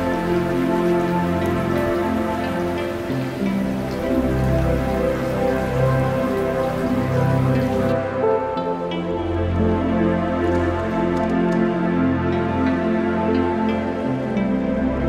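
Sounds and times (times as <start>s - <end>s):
slow music of held notes: 0.0s - 15.0s
steady rain falling: 0.0s - 15.0s.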